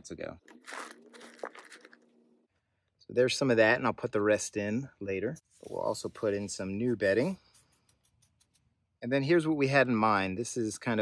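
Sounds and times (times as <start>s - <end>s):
dry bedding sprinkled crackling: 0.4s - 2.2s, 5.4s - 8.9s.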